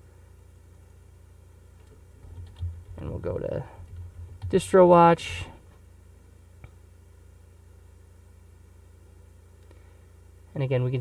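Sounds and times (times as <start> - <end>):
low steady hum: 0.0 - 11.0
keyboard typing: 1.8 - 4.7.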